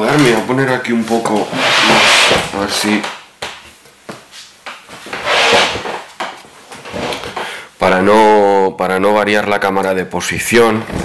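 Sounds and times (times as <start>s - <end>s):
objects scraping on surface: 1.1s - 2.7s, 5.1s - 6.1s.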